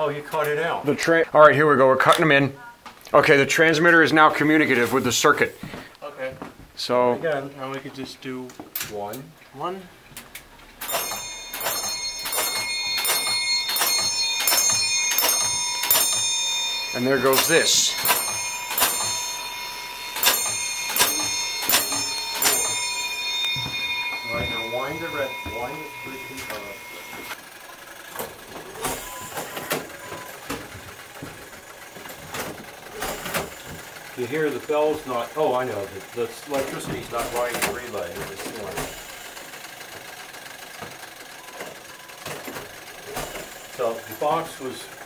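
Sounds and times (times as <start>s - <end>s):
clockwork mechanism clicking: 10.3s - 27.4s
low mechanical whirring: 10.3s - 34.6s
brass alarm bell strokes: 10.9s - 27.4s.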